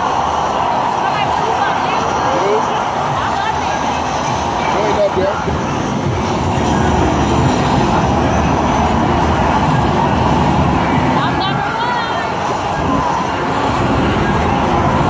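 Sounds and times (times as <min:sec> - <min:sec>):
arcade game engine sounds: 0:00.0 - 0:15.0
busy arcade din: 0:00.0 - 0:15.0
voices: 0:00.0 - 0:15.0.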